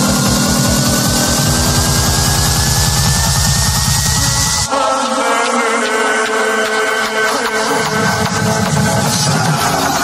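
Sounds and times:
rolling bass drum pattern: 0:00.0 - 0:04.7
rising synth tone: 0:00.0 - 0:05.9
sustained synth notes: 0:00.0 - 0:10.0.

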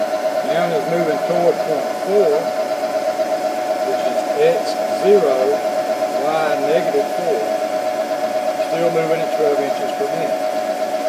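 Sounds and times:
milling machine whine: 0:00.0 - 0:11.0.

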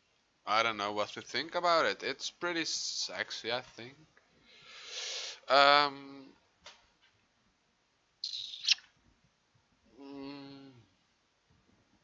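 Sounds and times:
person sniffing: 0:04.5 - 0:05.5.

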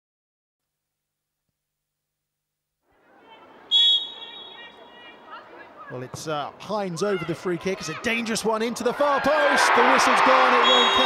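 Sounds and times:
referee's whistle blast: 0:03.7 - 0:04.8, 0:10.5 - 0:11.0.

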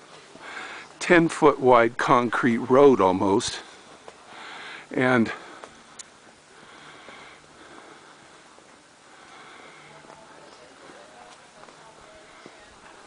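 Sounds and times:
footsteps on concrete: 0:00.0 - 0:01.3, 0:05.3 - 0:06.4, 0:07.0 - 0:13.0
faint distant voices: 0:00.0 - 0:13.0.

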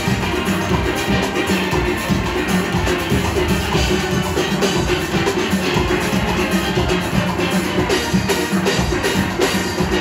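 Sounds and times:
drum kit beat: 0:00.0 - 0:10.0
steel band playing calypso: 0:00.0 - 0:10.0.

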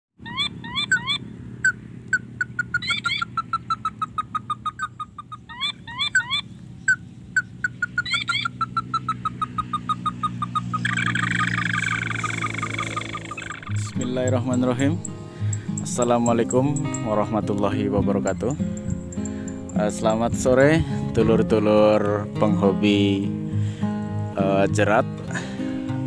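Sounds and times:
bird calling short notes: 0:00.2 - 0:17.3
steady low hum: 0:00.2 - 0:26.0.

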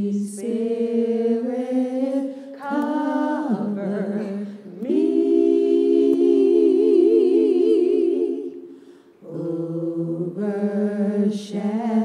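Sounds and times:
women singing unaccompanied: 0:00.0 - 0:08.6, 0:09.2 - 0:12.0.

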